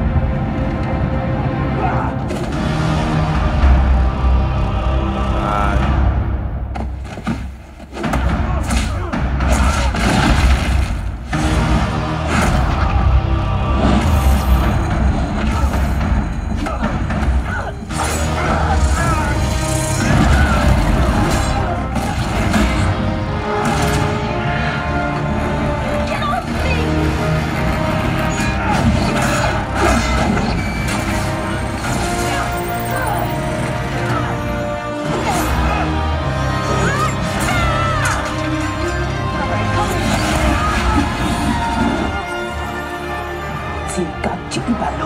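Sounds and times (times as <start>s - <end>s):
film soundtrack music with heavy bass: 0.0s - 45.0s
rush of music and effects: 0.0s - 45.0s.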